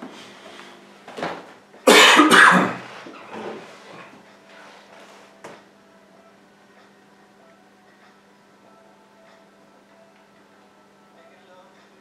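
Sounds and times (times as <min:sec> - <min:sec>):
person coughing loudly: 0:01.9 - 0:02.9.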